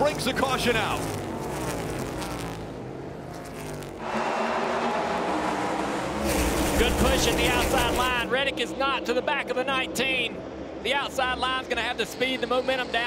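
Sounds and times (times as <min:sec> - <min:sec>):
pack of race cars droning: 0:00.0 - 0:13.0.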